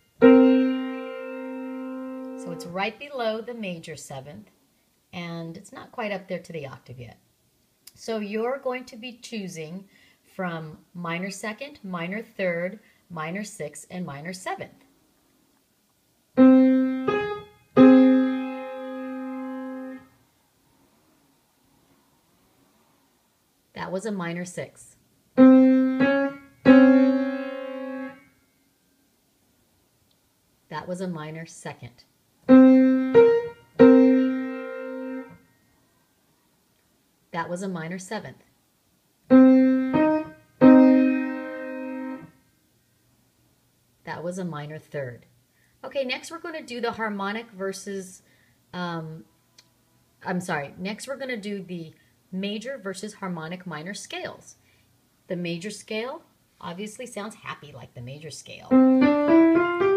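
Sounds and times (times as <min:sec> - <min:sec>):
piano notes: 0:00.0 - 0:02.7, 0:16.4 - 0:20.0, 0:25.4 - 0:28.2, 0:32.5 - 0:35.4, 0:39.3 - 0:42.3, 0:58.7 - 0:59.9.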